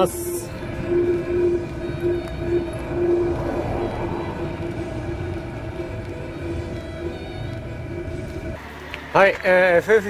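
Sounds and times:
air heater burner humming: 0.0 - 8.6.

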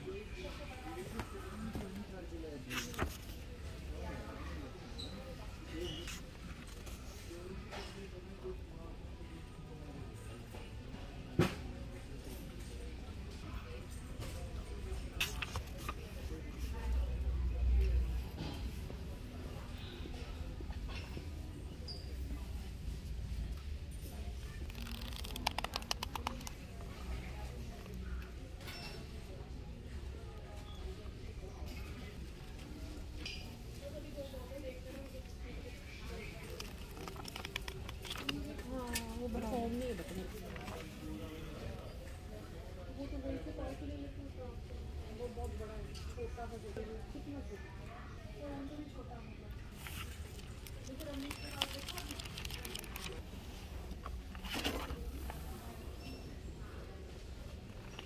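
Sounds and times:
paper pages riffled: 24.6 - 26.6, 36.4 - 38.5, 49.8 - 53.2.

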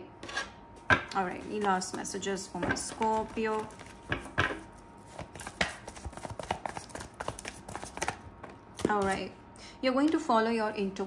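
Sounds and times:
cards being shuffled: 2.9 - 9.2.

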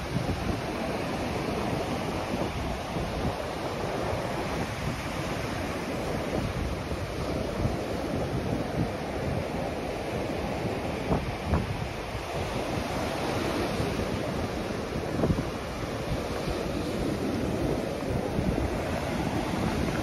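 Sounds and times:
ocean surf breaking: 0.0 - 20.0
wind buffeting microphone: 0.0 - 20.0.

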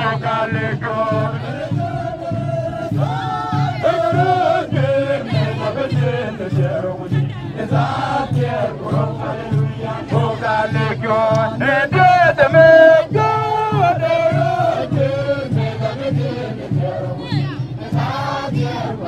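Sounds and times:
group singing together: 0.0 - 19.0
steady low beat: 0.0 - 19.0.

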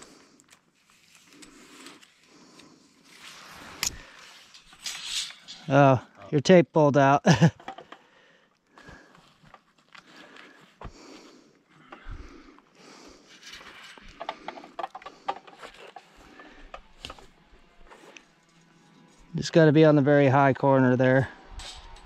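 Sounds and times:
rustling through brush: 0.0 - 5.5.

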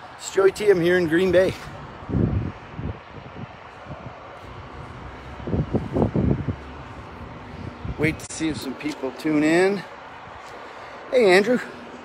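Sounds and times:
outdoor background noise: 0.0 - 12.0
wind buffeting microphone: 0.3 - 10.7.

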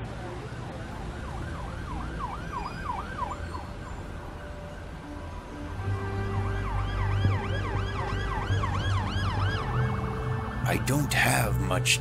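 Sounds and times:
emergency vehicle siren yelping: 0.0 - 5.2, 5.9 - 11.0
city traffic rumble: 0.0 - 12.0.

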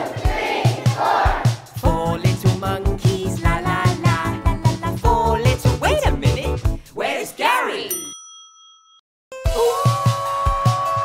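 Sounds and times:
music with thumping beat: 0.0 - 6.8, 9.5 - 11.0
bright bell-like ding: 7.9 - 9.0.

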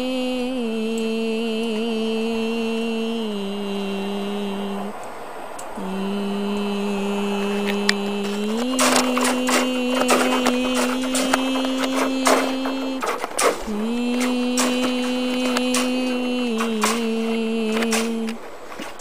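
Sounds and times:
person humming: 0.0 - 5.1, 5.8 - 19.0.

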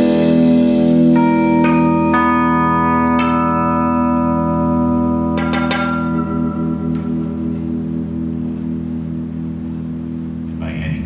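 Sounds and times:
electric guitars sustained chord: 0.0 - 11.0.

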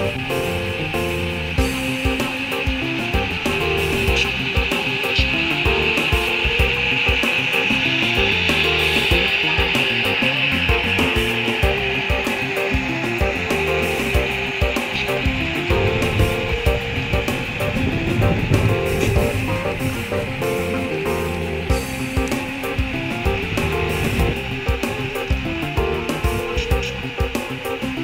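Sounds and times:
background music: 0.0 - 28.0
model train wheels rolling on track: 0.0 - 28.0.

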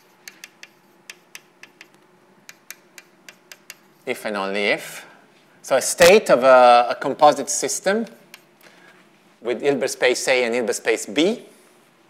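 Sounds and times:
chalk tapping on blackboard: 0.0 - 4.0.

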